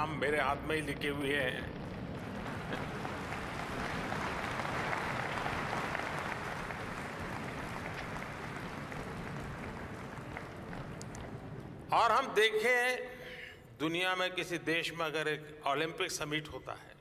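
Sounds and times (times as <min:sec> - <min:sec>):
audience applauding: 0:01.7 - 0:11.8.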